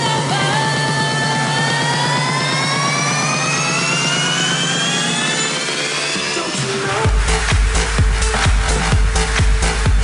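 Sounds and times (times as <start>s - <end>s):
rising synth sweep: 0.0s - 9.9s
fast repeating low note: 0.0s - 10.0s.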